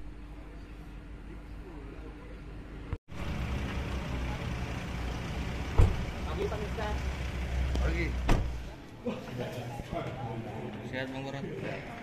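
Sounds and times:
car engine idling: 3.1s - 8.8s.

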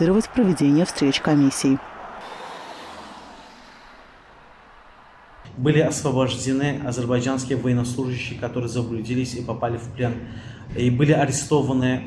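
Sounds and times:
cars driving past: 0.0s - 5.5s.

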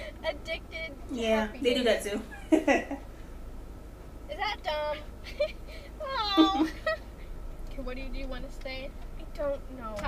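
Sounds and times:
people laughing: 2.4s - 3.0s, 6.3s - 7.0s.

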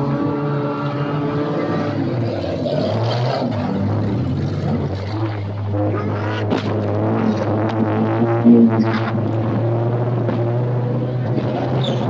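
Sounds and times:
car engine droning: 0.0s - 12.0s.

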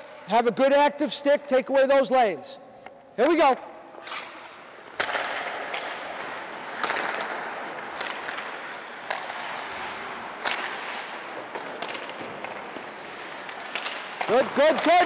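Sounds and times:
hockey sticks hitting puck: 0.0s - 2.2s, 2.8s - 15.0s
ice skates scraping: 3.2s - 15.0s.

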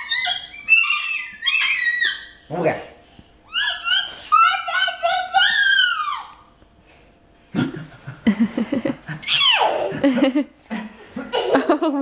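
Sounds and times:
toddler shrieking: 0.0s - 2.4s, 3.5s - 6.3s, 9.2s - 9.9s.

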